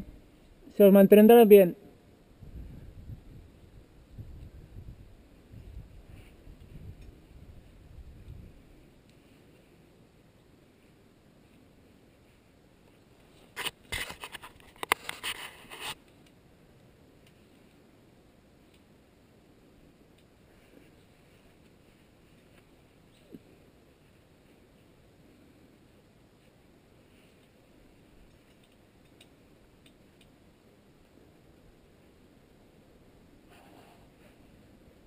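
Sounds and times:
glove and rope scraping: 10.8 - 16.0, 33.5 - 34.5.

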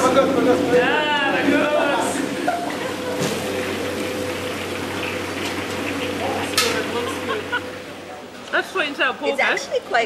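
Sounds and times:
wok station rushing hum: 0.0 - 10.0.

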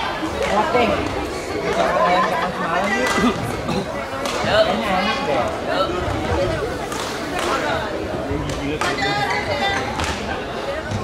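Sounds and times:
voices chattering in a hall: 0.0 - 11.0.

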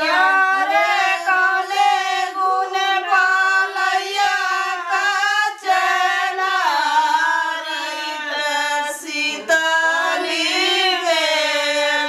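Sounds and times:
women singing folk song: 0.0 - 12.0.

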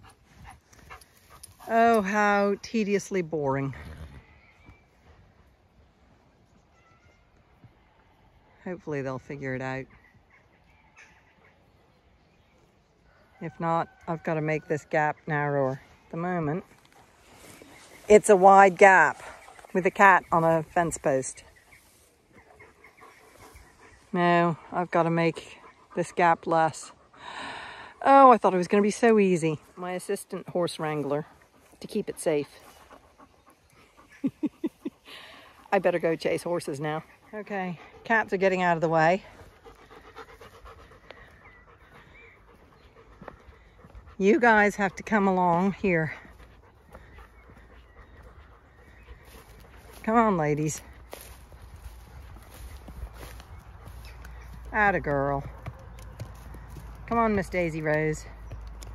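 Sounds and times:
dog panting: 22.3 - 54.7.

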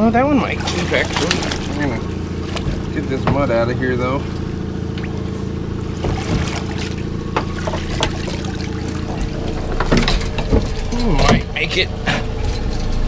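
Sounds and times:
boat engine idling: 0.0 - 13.0
water trickling and splashing: 0.0 - 13.0
wire pot clanking: 9.0 - 13.0.

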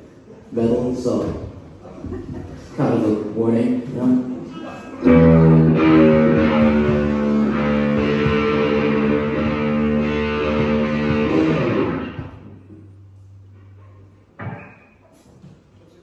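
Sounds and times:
amplifier hum: 4.9 - 14.3
electric guitars and bass chord: 5.0 - 14.1.

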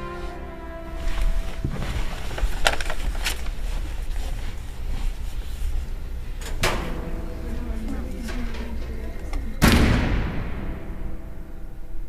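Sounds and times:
background music: 0.0 - 3.7, 6.1 - 12.0
deep cinematic boom impact: 9.6 - 12.0.

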